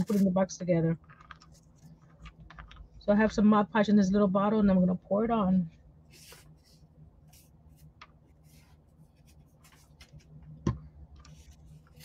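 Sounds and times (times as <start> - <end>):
hands handling paper: 6.1 - 10.5.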